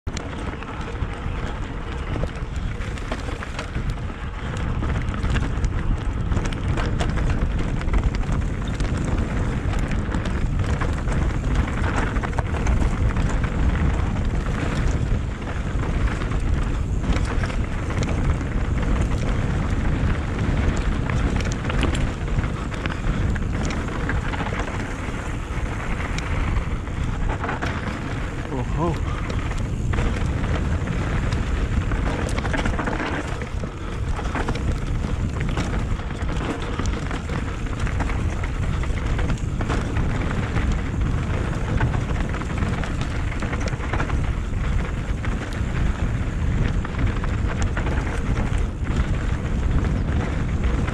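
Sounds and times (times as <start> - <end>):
bike clicks and rattles: 0.0 - 50.9
wind rumble on microphone: 0.0 - 50.9
tyres rolling on dirt and stones: 0.1 - 50.9.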